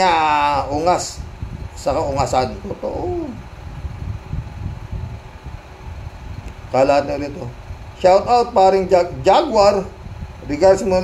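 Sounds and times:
faint hiss: 0:00.0 - 0:11.0
low irregular rumble: 0:00.0 - 0:11.0.

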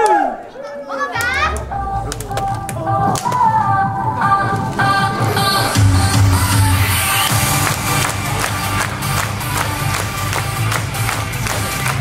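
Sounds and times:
dance track over loudspeakers: 0:01.2 - 0:12.0.

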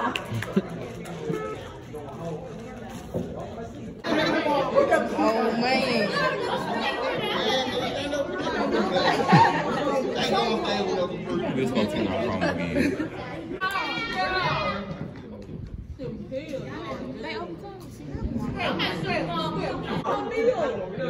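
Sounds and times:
overlapping chatter of people: 0:00.0 - 0:21.0.

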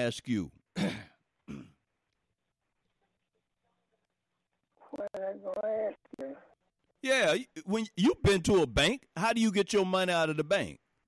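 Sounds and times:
man clearing throat: 0:00.7 - 0:01.8.

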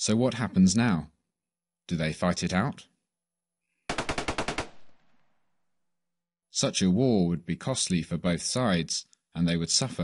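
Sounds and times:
rapid gunfire burst: 0:03.9 - 0:05.2
gunfire echo: 0:03.9 - 0:05.5.

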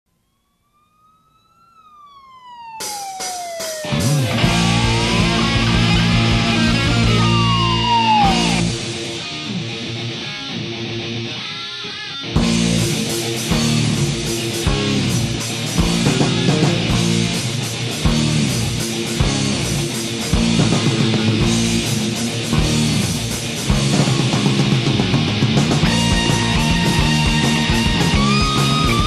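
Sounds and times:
siren-like wail: 0:00.1 - 0:08.9
hard rock band playing: 0:02.8 - 0:29.0.

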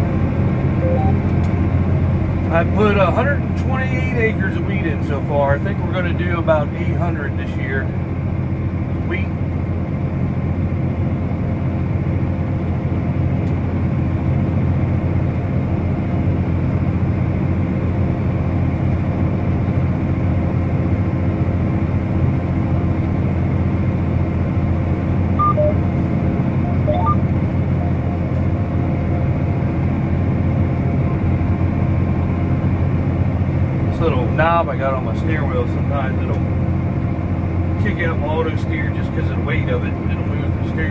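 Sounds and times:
tractor diesel engine drone: 0:00.0 - 0:40.9.

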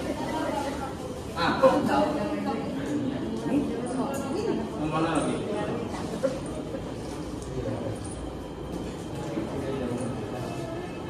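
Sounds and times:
indistinct background voices: 0:00.0 - 0:11.0.

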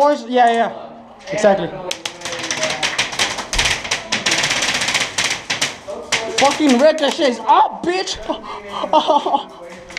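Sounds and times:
rapid paintball fire: 0:01.9 - 0:07.2.

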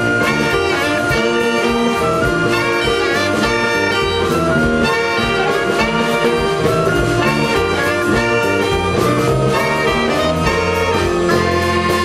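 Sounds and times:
flutes: 0:00.0 - 0:12.0
saxophone band playing jazz: 0:00.0 - 0:12.0
steady drum beat: 0:00.0 - 0:12.0.

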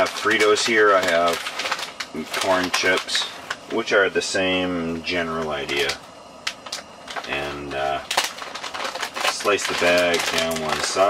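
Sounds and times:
plastic chip bag crackling: 0:00.0 - 0:04.0, 0:05.0 - 0:11.0
man's voice: 0:09.3 - 0:11.0.

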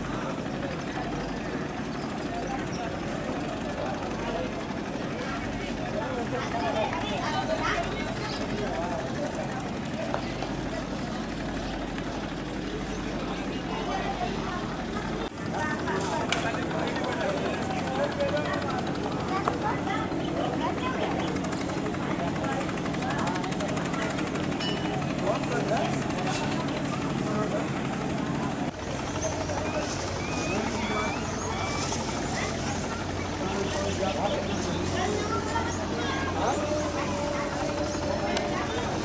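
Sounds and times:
boat engine drone: 0:00.0 - 0:39.0
many voices talking: 0:00.0 - 0:39.0.

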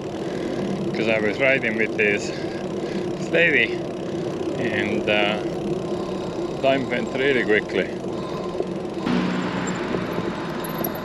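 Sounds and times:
bicycle rolling on pavement: 0:00.0 - 0:11.0.

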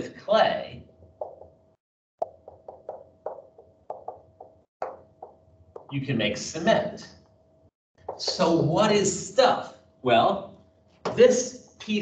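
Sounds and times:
marker tapping on whiteboard: 0:01.2 - 0:01.6, 0:02.2 - 0:05.9, 0:08.0 - 0:08.5.

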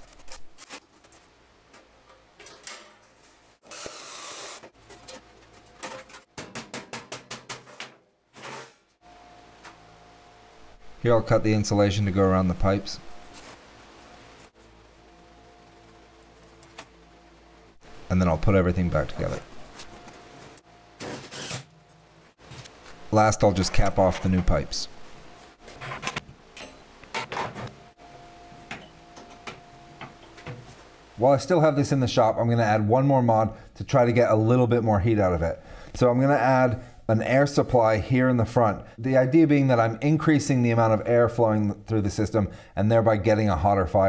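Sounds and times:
crackling welding bursts: 0:03.6 - 0:04.8.

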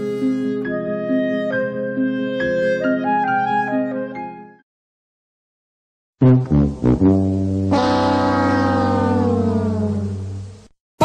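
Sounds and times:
siren-like held synth note: 0:07.7 - 0:10.3.

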